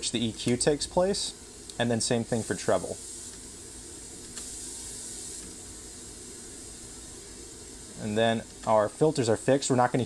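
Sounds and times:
pink noise hiss: 0.0 - 10.0.

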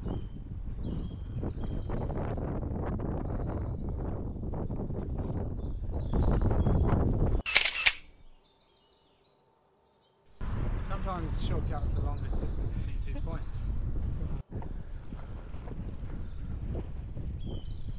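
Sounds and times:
wind buffeting microphone: 0.0 - 8.0, 10.4 - 17.9
man talking: 10.9 - 13.6.

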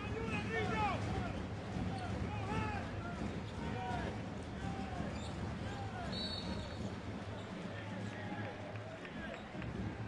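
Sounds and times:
arena crowd murmur: 0.0 - 10.0.

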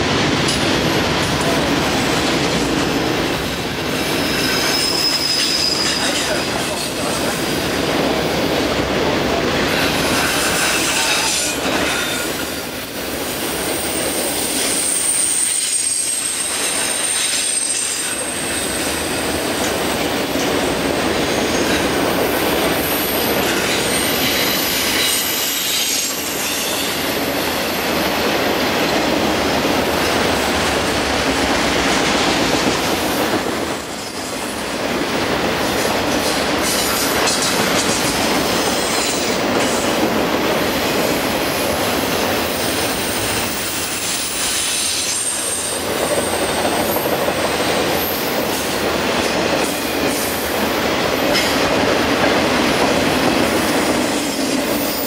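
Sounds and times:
freight train rolling past: 0.0 - 55.0
high-pitched wheel squeal: 4.4 - 6.2.

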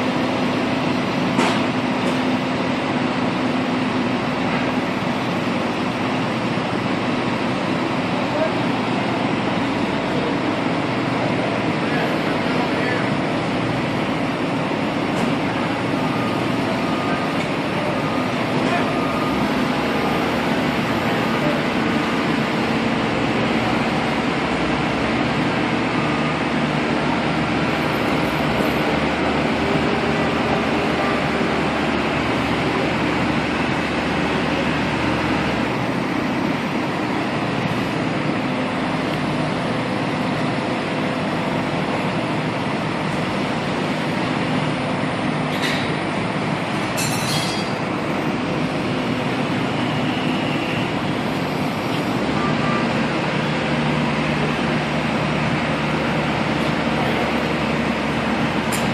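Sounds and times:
diesel engines rumbling: 0.0 - 58.9.

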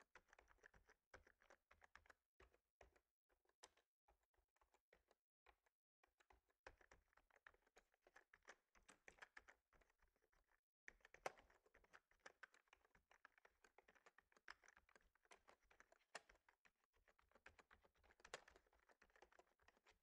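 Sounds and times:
typing on a keyboard: 0.0 - 3.9, 4.5 - 20.0.

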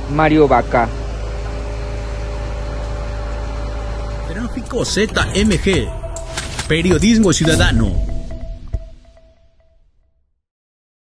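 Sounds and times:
vehicle engine idling: 0.0 - 9.1.

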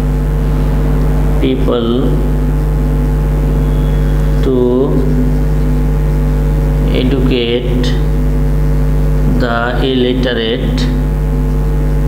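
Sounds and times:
loud steady low hum: 0.0 - 12.0.

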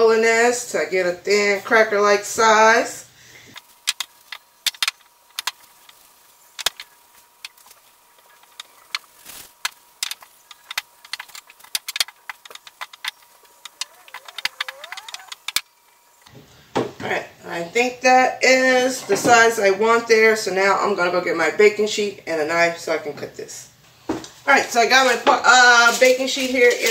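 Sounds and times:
rolling pin clicks and knocks: 3.9 - 6.0, 6.6 - 15.6
rolling pin rolling dough: 3.9 - 15.6.

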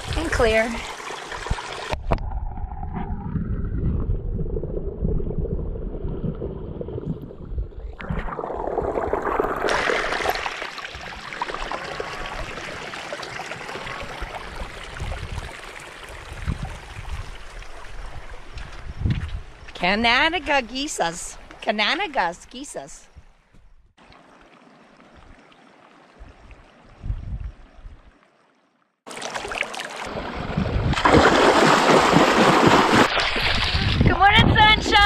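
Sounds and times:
water splashing over rocks: 7.9 - 18.1, 29.1 - 34.1.

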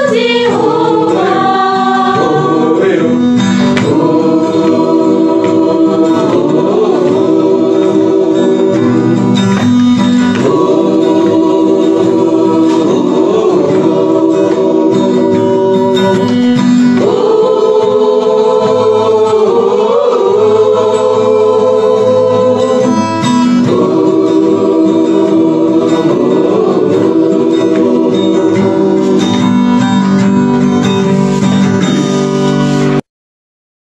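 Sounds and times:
choir singing gospel: 0.0 - 33.0
instrumental backing: 0.0 - 33.0.

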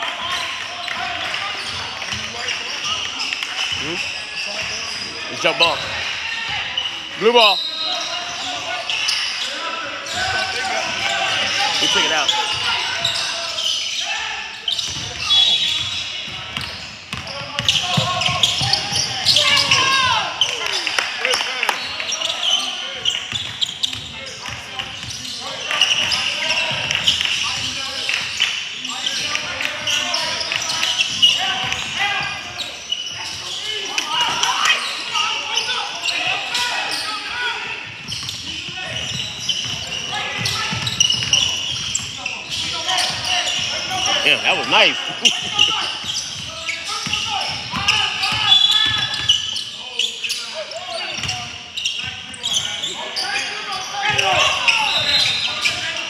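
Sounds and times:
sneakers squeaking: 0.0 - 56.0
indistinct voices: 43.5 - 46.1.

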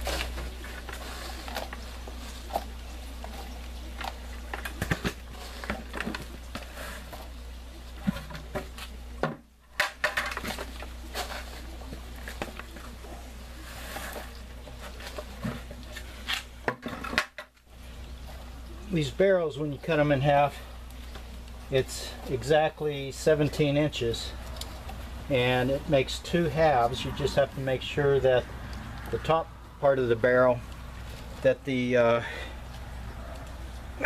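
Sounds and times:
soil and containers clattering: 0.0 - 34.0.

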